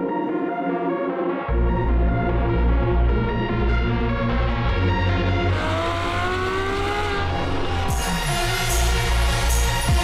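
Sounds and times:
electronic music with bass beat: 0:00.0 - 0:10.0
car engine accelerating: 0:03.8 - 0:10.0.

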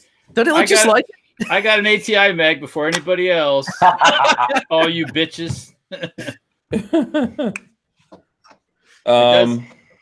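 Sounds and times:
man laughing: 0:00.6 - 0:02.0, 0:03.6 - 0:07.2.

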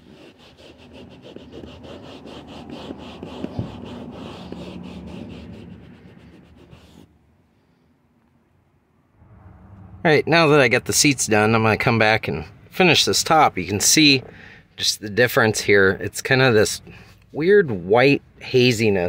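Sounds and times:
rag rubbing leather seat: 0:00.0 - 0:07.1.

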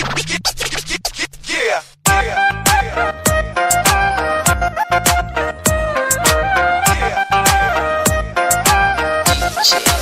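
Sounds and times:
record scratching: 0:00.0 - 0:01.7, 0:09.3 - 0:10.0.

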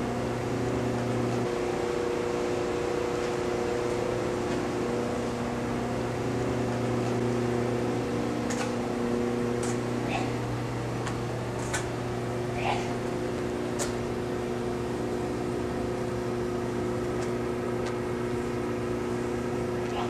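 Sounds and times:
machine hum: 0:00.0 - 0:20.0.

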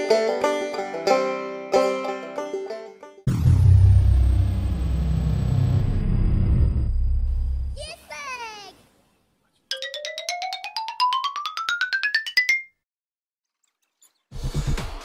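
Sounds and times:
loud low rumble: 0:03.3 - 0:07.8
short falling warble: 0:03.3 - 0:07.8.

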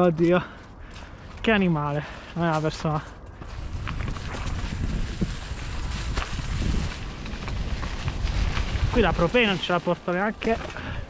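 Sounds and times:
bike tyres on leaves and trail: 0:00.0 - 0:11.0.

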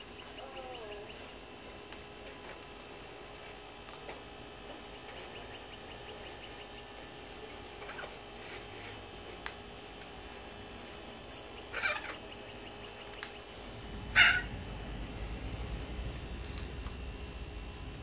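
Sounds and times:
short bird calls: 0:14.1 - 0:14.6.

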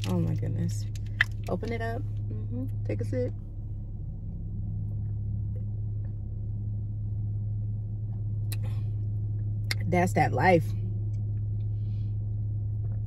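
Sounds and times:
car engine running: 0:00.0 - 0:13.0.

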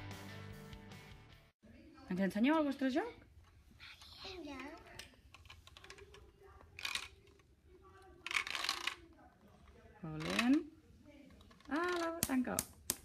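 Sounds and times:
child's voice: 0:03.8 - 0:05.0
plastic pieces rattling and clicking: 0:05.3 - 0:07.5, 0:08.1 - 0:10.6, 0:11.3 - 0:13.0.

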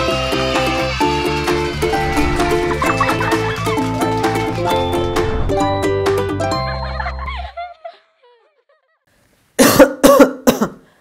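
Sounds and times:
man coughing: 0:09.6 - 0:10.9.

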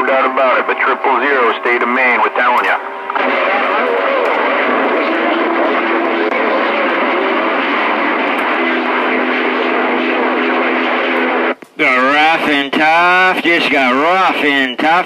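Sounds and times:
faint humming tones: 0:00.0 - 0:11.8
radio static hiss: 0:00.0 - 0:15.0.

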